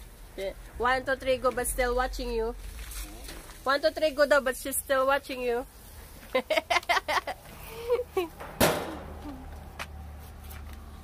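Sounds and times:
metal grill lid banging shut: 8.4 - 9.2.

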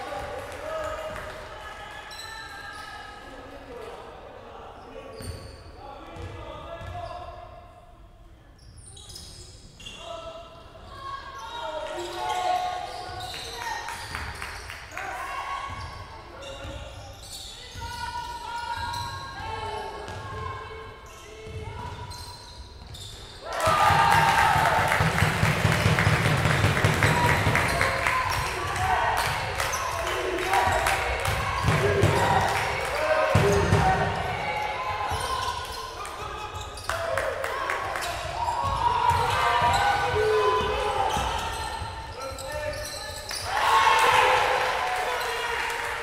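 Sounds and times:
players shouting: 23.4 - 41.8, 43.4 - 46.0.

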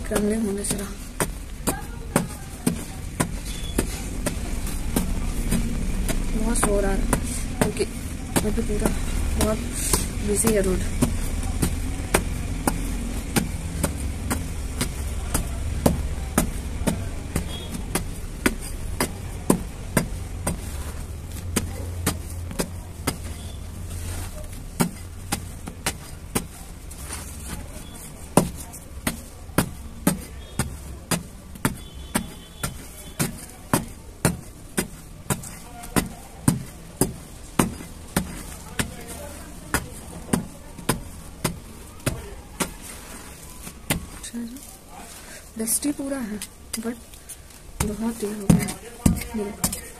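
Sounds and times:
hand tool tapping dry dirt: 0.0 - 45.0, 45.6 - 49.9
road traffic rumble: 0.0 - 49.9.

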